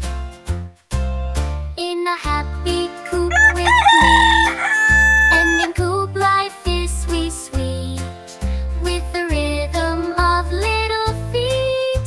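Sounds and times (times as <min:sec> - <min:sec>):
backing music: 0:03.0 - 0:08.2
rooster crowing: 0:03.3 - 0:05.8.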